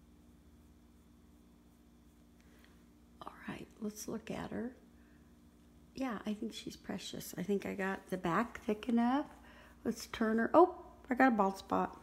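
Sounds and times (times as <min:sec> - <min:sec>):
low steady hum: 0:00.0 - 0:12.0
woman speaking: 0:03.2 - 0:04.8, 0:05.9 - 0:12.0.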